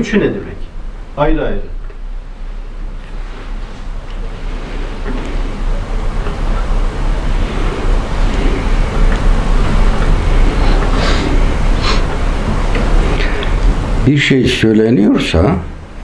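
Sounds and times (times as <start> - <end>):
rushing noise with low rumble: 0.4 - 14.2.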